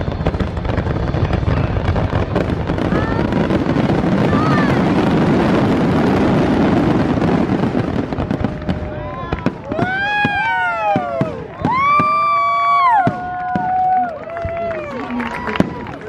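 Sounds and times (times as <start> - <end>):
fireworks crackling and bursting: 0.0 - 16.0.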